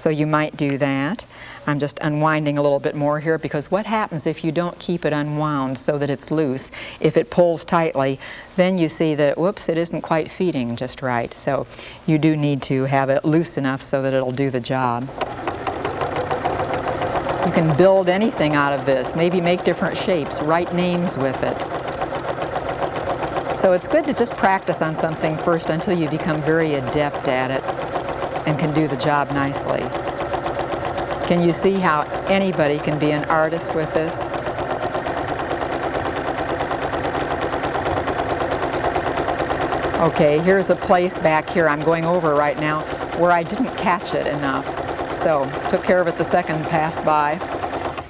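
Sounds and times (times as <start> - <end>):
sewing machine running: 14.2 - 48.0
needle clicking rapidly: 14.3 - 48.0.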